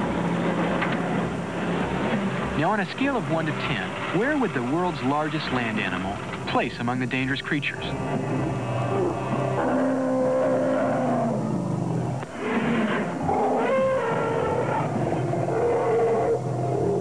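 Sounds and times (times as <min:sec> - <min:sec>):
elephants calling: 0:07.7 - 0:17.0.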